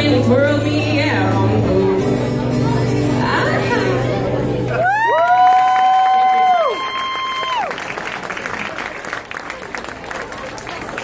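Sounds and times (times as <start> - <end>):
audience whooping: 4.7 - 8.9
audience clapping and cheering: 4.7 - 11.0.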